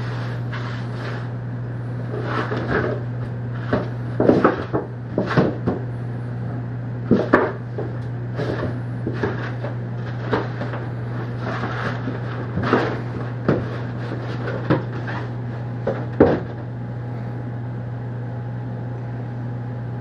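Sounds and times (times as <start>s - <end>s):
steady low hum: 0.0s - 20.0s
cardboard carton rustling and knocking: 3.6s - 5.9s, 7.1s - 16.6s.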